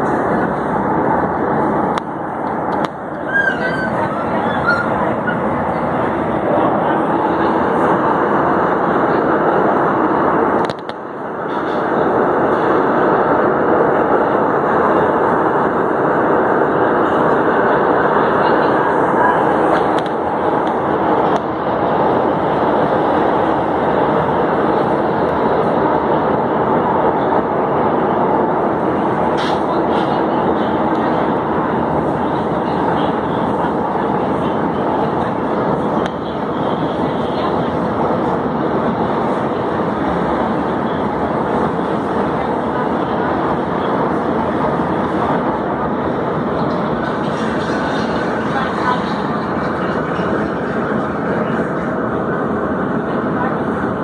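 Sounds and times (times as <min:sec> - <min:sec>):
metro train wheels on rails: 0:00.0 - 0:54.0.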